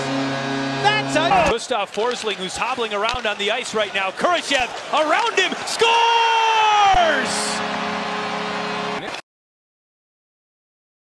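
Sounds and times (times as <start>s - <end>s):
arena goal horn: 0.0s - 1.5s, 6.6s - 9.1s
crowd noise: 0.0s - 9.2s.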